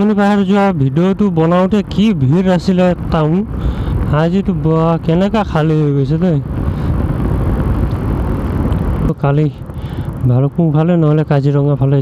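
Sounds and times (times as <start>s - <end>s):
motorcycle engine rumble: 0.0s - 12.0s
road noise: 0.0s - 12.0s
wind noise: 0.0s - 12.0s.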